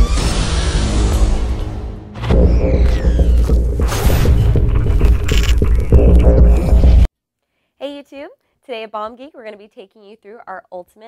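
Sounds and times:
intro music with heavy bass: 0:00.0 - 0:07.1.

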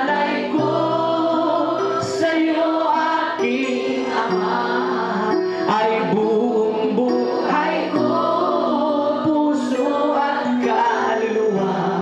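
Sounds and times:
electronic keyboard accompaniment: 0:00.0 - 0:12.0
voices singing held notes: 0:00.0 - 0:12.0
man singing into a microphone: 0:05.6 - 0:08.0, 0:08.8 - 0:12.0.

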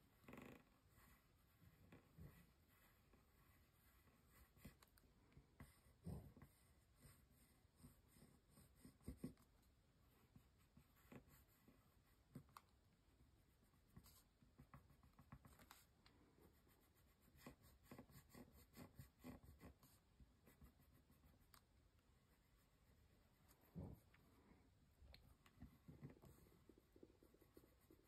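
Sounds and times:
pencil scratching on paper: 0:00.8 - 0:12.6, 0:13.4 - 0:24.4, 0:25.4 - 0:28.0.

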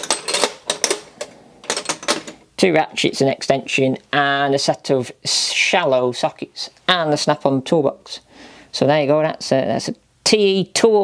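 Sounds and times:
metal tools clinking: 0:00.0 - 0:02.4.

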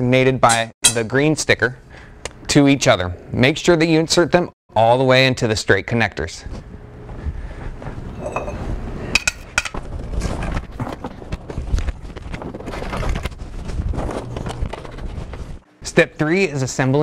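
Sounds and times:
metal poles clanking: 0:08.2 - 0:08.6, 0:09.2 - 0:09.8.

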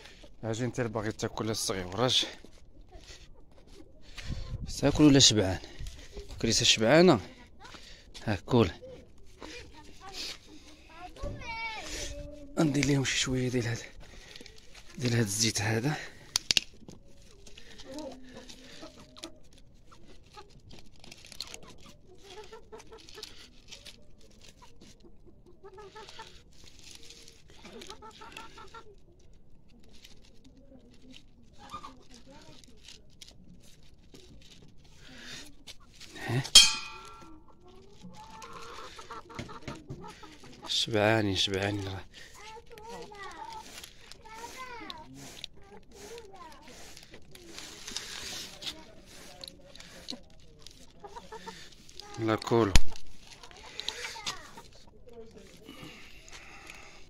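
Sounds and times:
chickens clucking: 0:00.0 - 0:15.5, 0:16.4 - 0:29.6, 0:34.3 - 0:57.0
cats crunching dry kibble: 0:13.6 - 0:36.5, 0:37.4 - 0:57.0
metal clang: 0:36.6 - 0:37.3.

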